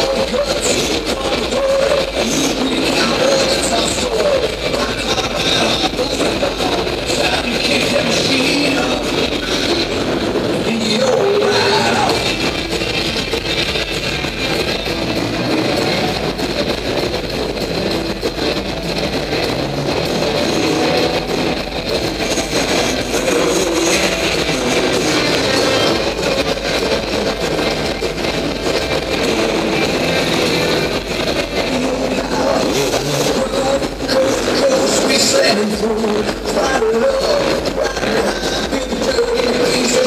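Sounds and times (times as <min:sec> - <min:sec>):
dirt bike engines revving: 0:00.0 - 0:40.0
music over loudspeakers: 0:00.0 - 0:40.0.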